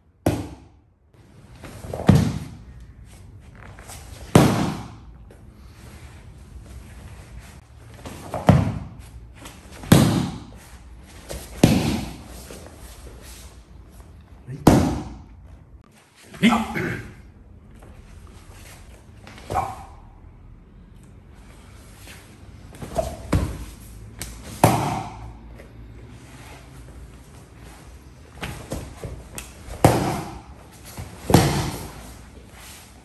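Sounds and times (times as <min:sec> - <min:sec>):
bodies thudding on mats: 0:01.6 - 0:02.6, 0:07.9 - 0:12.5, 0:28.3 - 0:32.8.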